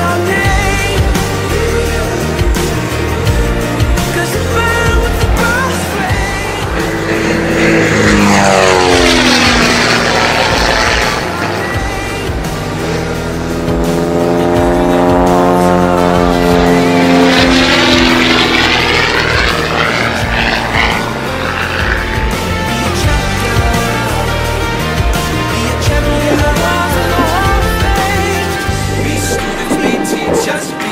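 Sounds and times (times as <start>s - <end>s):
biplane propeller and engine: 0.0s - 30.9s.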